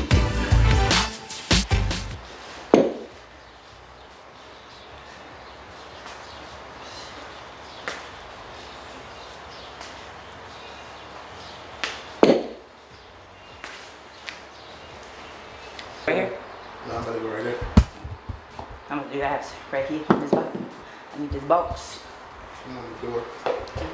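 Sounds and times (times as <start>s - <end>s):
weights knocking on concrete floor: 20.0s - 20.7s.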